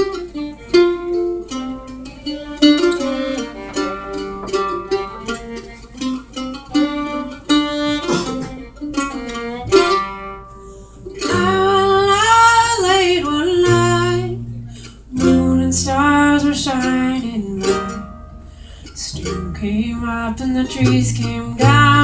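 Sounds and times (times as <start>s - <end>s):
fiddle melody: 0.0s - 22.0s
mandolin: 0.0s - 22.0s
strummed acoustic guitar: 0.0s - 22.0s
upright bass: 0.0s - 22.0s.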